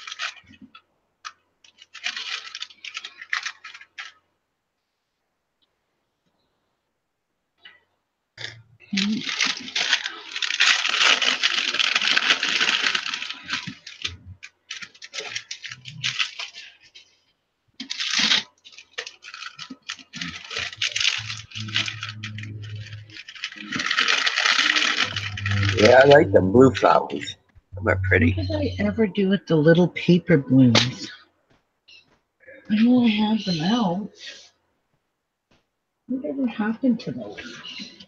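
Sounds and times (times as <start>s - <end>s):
plastic bag crinkling: 0.0s - 0.8s, 1.6s - 4.2s, 8.9s - 26.2s.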